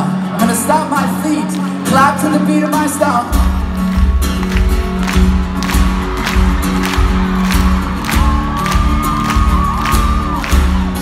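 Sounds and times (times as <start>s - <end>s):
crowd clapping along: 0.3s - 11.0s
bass drum beat with clap: 3.4s - 11.0s.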